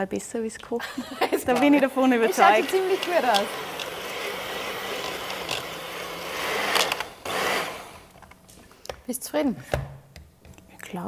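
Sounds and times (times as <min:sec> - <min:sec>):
hand mixer motor hum: 0:01.6 - 0:08.2.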